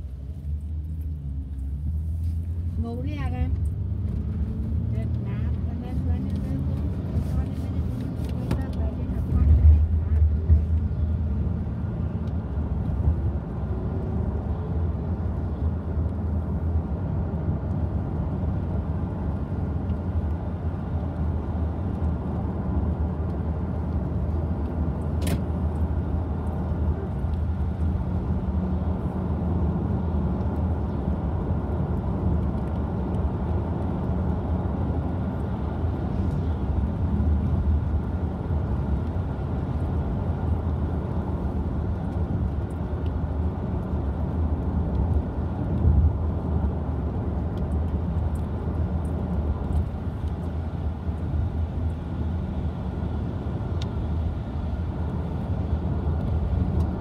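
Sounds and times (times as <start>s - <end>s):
bus engine and road rumble: 0.0s - 57.0s.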